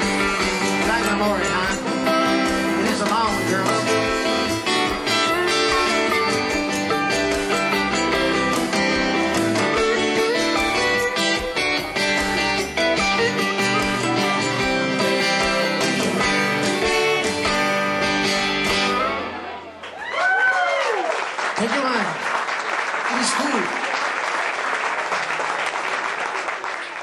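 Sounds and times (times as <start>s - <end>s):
lead electric guitar: 0.0s - 19.9s
live band playing: 0.0s - 20.0s.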